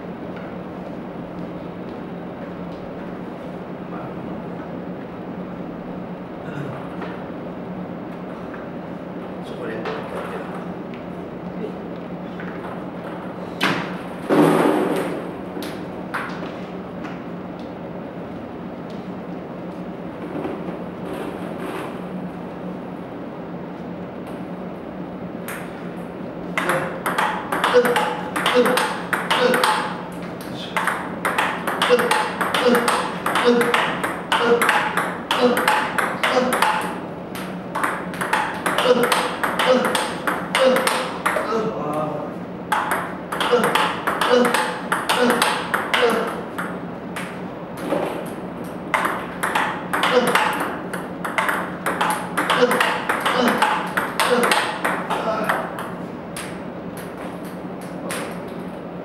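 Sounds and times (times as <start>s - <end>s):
table tennis balls hit by paddles: 12.4s - 16.6s, 26.5s - 41.6s, 42.7s - 58.6s
balls bouncing on table: 26.6s - 30.0s, 30.7s - 41.6s, 42.7s - 57.2s.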